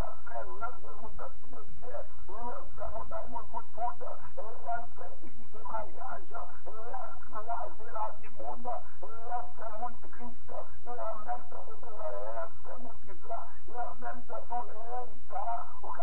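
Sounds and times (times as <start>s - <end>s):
low hum: 0.0s - 16.0s
person talking: 0.0s - 16.0s.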